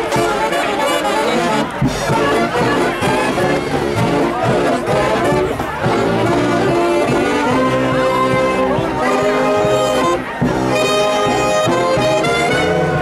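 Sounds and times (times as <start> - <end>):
saxophone section playing: 0.0 - 13.0
string band playing live: 0.0 - 13.0.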